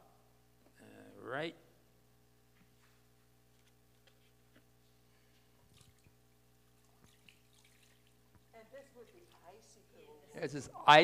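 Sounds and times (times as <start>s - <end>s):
low room hum: 0.0s - 11.0s
faint water splashes and drips: 5.6s - 9.8s.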